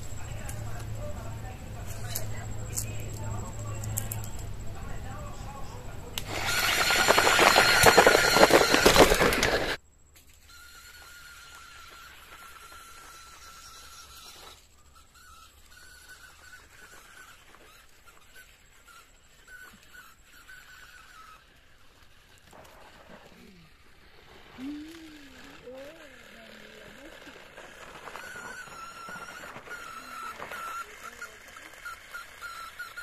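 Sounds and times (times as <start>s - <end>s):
faint high whine: 0.0s - 33.0s
small gear motors whining: 0.0s - 33.0s.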